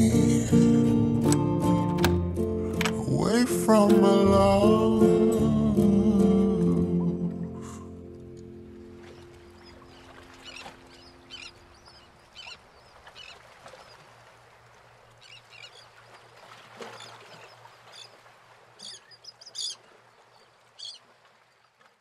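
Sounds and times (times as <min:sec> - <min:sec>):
song ending: 0:00.0 - 0:07.5.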